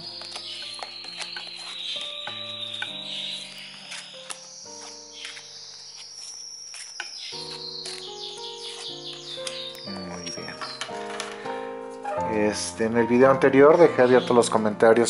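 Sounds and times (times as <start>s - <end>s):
soft music of sustained chords: 0.0s - 15.0s
cards being shuffled: 3.4s - 11.4s.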